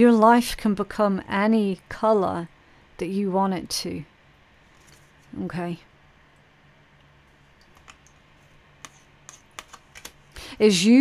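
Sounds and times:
card clicks and taps on table: 7.7s - 8.1s, 8.8s - 10.2s.

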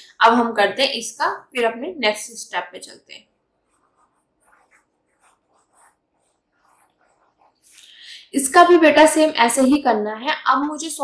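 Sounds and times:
stylus scratching tablet: 3.4s - 7.8s.

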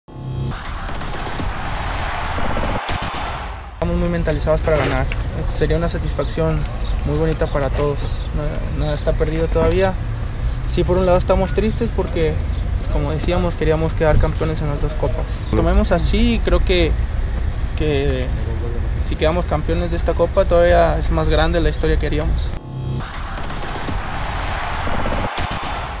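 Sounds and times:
sharp hits: 0.1s - 4.6s, 22.6s - 26.0s
noisy sweep: 0.1s - 5.7s, 22.6s - 26.0s.

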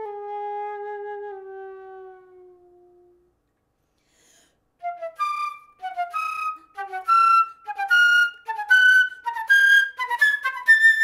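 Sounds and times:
flute notes: 0.0s - 3.5s, 4.8s - 11.0s
soft intake of breath: 3.8s - 4.6s.

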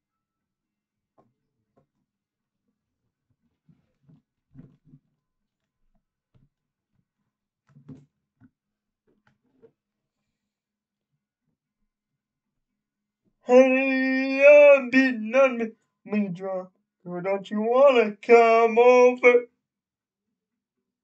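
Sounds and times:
faint irregular taps and knocks: 1.2s - 2.1s, 3.3s - 9.9s.

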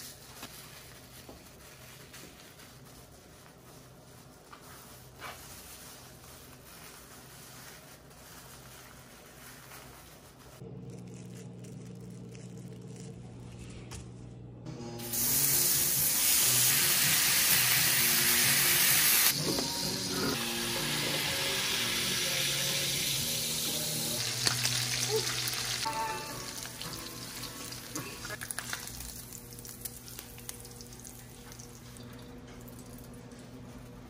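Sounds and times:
bacon sizzling in a skillet: 15.0s - 31.2s.

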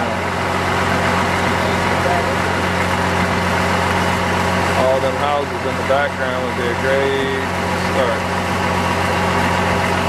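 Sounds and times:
boat motor idling: 0.0s - 10.0s.

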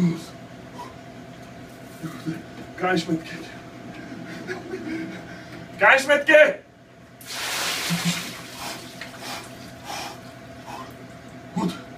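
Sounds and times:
water pouring and splashing: 7.2s - 9.2s.

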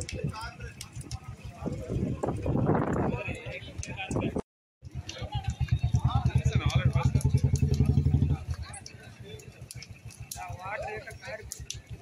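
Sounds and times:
people talking: 0.0s - 12.0s
engine idling: 5.0s - 10.4s.

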